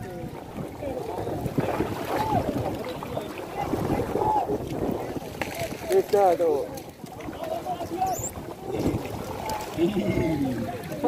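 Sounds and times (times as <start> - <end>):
water splashing and sloshing: 0.0 - 11.0
wind rumbling on microphone: 0.0 - 11.0.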